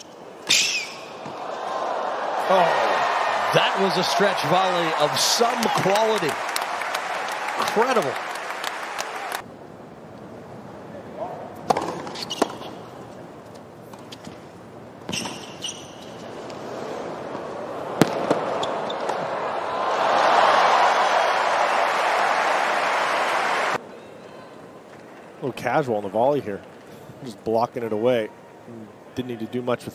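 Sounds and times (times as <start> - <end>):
crowd cheering: 1.0 - 9.4, 17.2 - 24.6
shoe squeak: 12.1 - 12.8, 15.1 - 16.3.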